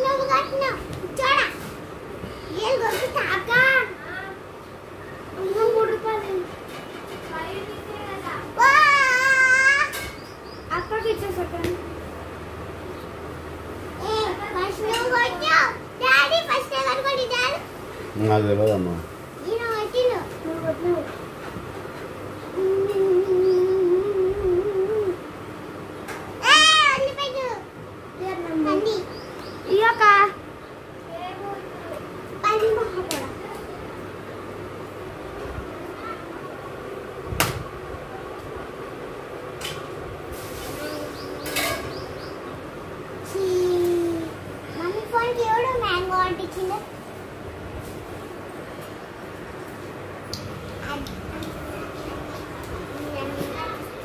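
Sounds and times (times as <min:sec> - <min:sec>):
young children talking: 0:00.0 - 0:18.0, 0:19.4 - 0:21.4, 0:22.2 - 0:54.0.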